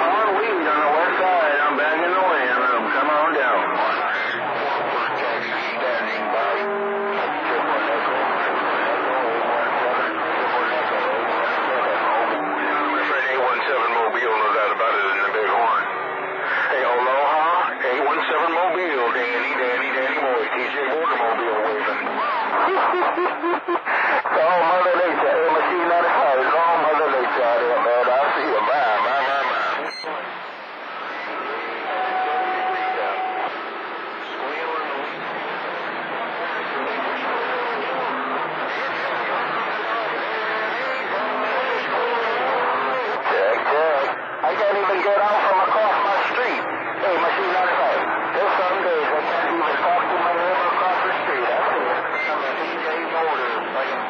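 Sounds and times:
garbled radio speech: 0.0 - 54.0.

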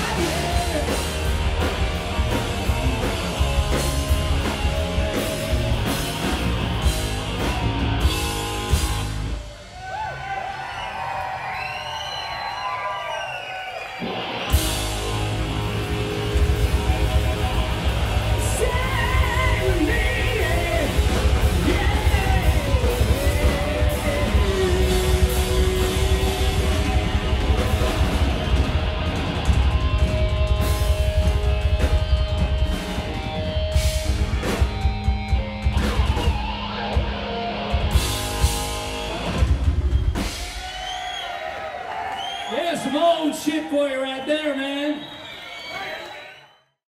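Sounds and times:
bass guitar: 0.0 - 9.6, 14.0 - 40.7
electric guitar lead line: 0.0 - 9.6, 14.0 - 40.6
live rock band playing: 0.0 - 10.2, 13.8 - 41.1
drums: 0.0 - 46.0.

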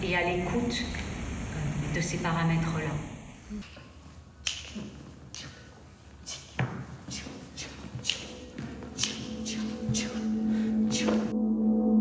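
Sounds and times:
sharp snap: 4.4 - 5.5.

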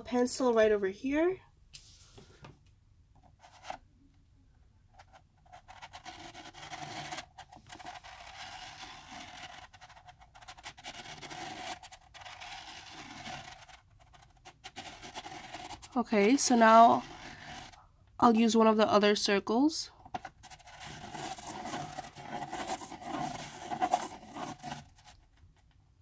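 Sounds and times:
pencil scratching on paper: 5.0 - 17.8, 20.2 - 25.2.

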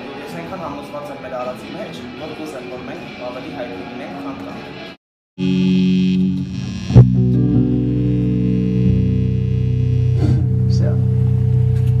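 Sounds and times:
band striking a loud chord: 5.4 - 12.0
guitar amplifier hum and buzz: 5.4 - 12.0.

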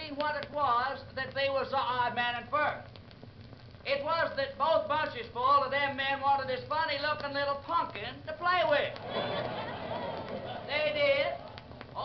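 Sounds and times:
man telling comic monologue: 0.0 - 2.9, 3.8 - 9.0, 10.7 - 11.4.

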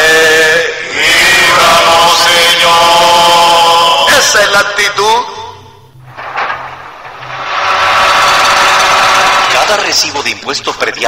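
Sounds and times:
engine-like machine noise: 6.0 - 10.0.

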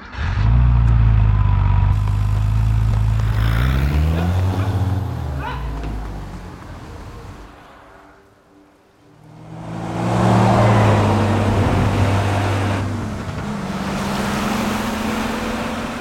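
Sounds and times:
car engine accelerating: 0.0 - 7.8, 9.1 - 16.0.

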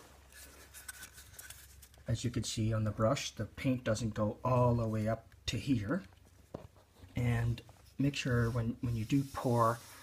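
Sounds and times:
brush wiped against can rim: 7.9 - 10.0.

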